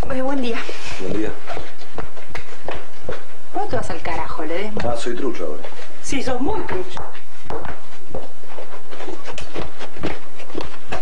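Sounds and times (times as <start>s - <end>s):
footsteps on hard floor: 0.1s - 11.0s.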